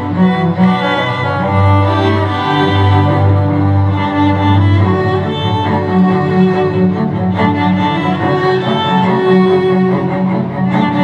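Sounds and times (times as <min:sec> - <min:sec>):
cello ensemble bowing: 0:00.0 - 0:11.0.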